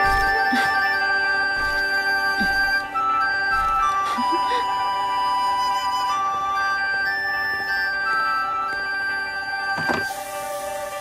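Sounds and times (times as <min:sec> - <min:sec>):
background music: 0:00.0 - 0:11.0
steam hiss: 0:10.1 - 0:11.0.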